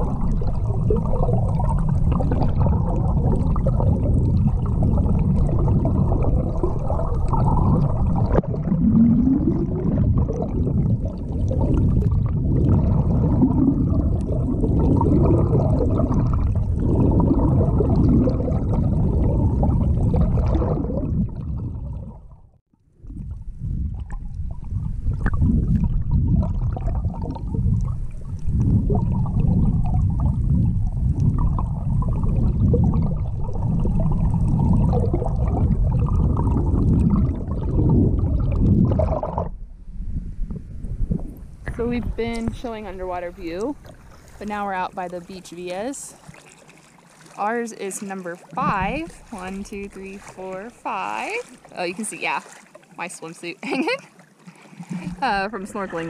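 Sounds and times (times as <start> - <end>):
underwater rushing and gurgling: 0.0 - 56.0.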